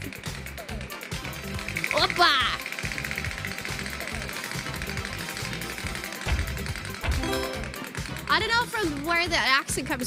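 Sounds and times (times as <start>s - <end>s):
game-show music: 7.0s - 8.3s.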